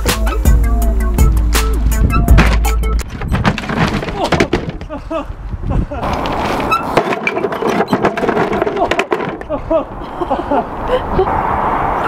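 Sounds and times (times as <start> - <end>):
man calling out and laughing: 4.2 - 6.0, 8.8 - 10.0.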